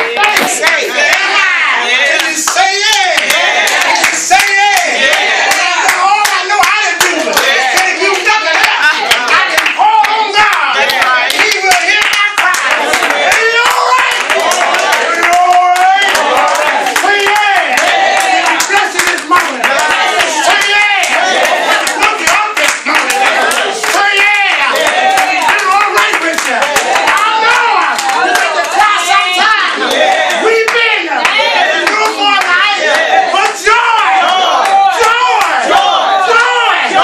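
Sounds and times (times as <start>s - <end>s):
congregation clapping: 0.0s - 37.0s
raised voices: 0.0s - 37.0s.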